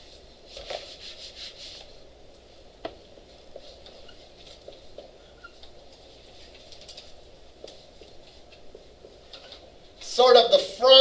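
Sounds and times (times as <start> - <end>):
room hum: 0.0 - 11.0
marker squeak: 3.9 - 4.3, 5.3 - 5.6.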